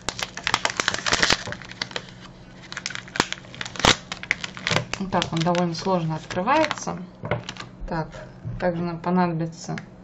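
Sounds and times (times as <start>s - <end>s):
wrapper snapping: 0.0s - 7.7s
plastic wrapper crinkling: 0.0s - 7.8s.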